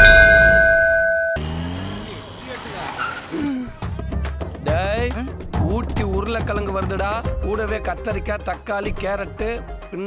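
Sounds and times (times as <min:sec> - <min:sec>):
ringing metallic tone: 0:00.0 - 0:01.4.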